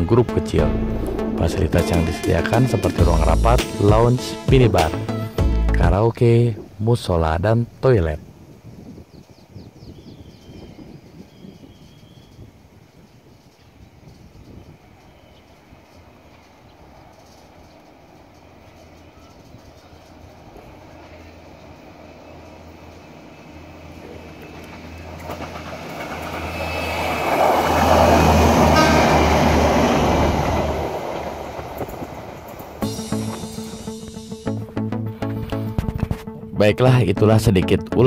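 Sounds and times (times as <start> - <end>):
diesel train engine drone: 0.0 - 5.8, 14.4 - 36.5
train wheels rumbling: 13.7 - 34.4.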